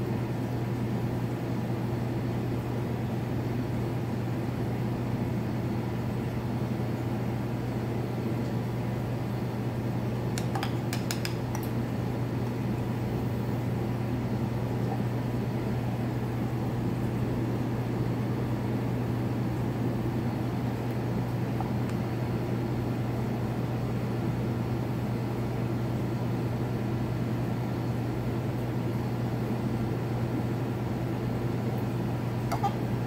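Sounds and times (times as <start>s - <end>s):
aquarium pump humming: 0.0s - 33.0s.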